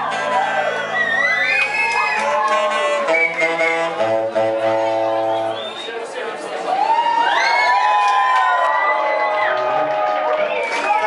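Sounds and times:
crowd whooping and cheering: 0.0s - 11.0s.

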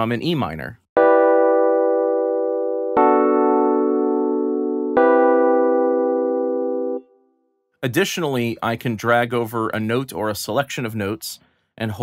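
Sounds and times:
electric piano chords: 1.0s - 7.2s.

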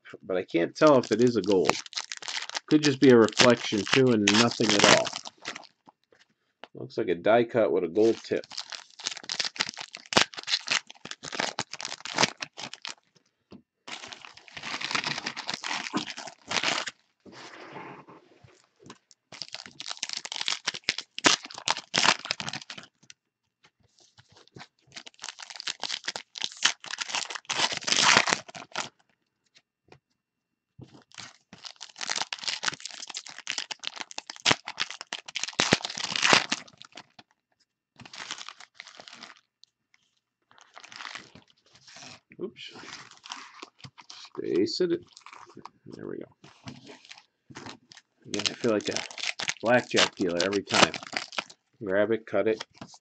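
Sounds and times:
cards rustling: 0.8s - 5.7s, 8.0s - 13.0s, 13.9s - 16.9s, 46.4s - 51.5s
foil wrappers crinkling: 0.8s - 5.9s, 8.0s - 13.1s, 13.9s - 17.0s, 19.0s - 23.1s, 24.0s - 29.0s, 30.9s - 37.3s, 38.0s - 39.5s, 40.5s - 42.2s, 42.8s - 44.4s, 45.0s - 45.6s, 46.4s - 51.6s.

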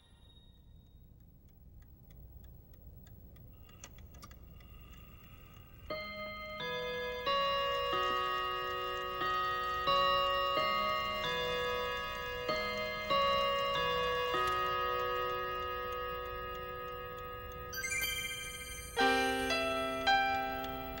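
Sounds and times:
bell-like chimes melody: 6.0s - 16.8s, 17.7s - 21.0s.

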